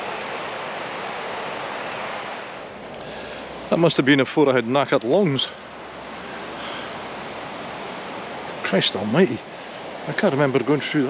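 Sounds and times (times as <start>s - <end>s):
river running: 0.0s - 11.0s.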